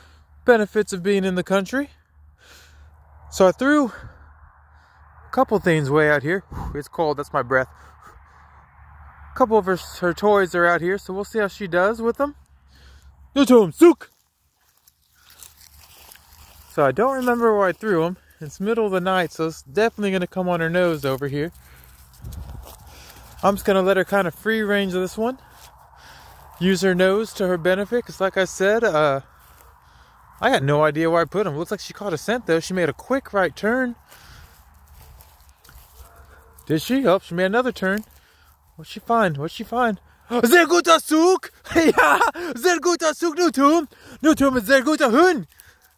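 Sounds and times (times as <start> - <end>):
footsteps crunching through dry grass: 7.6 - 45.9.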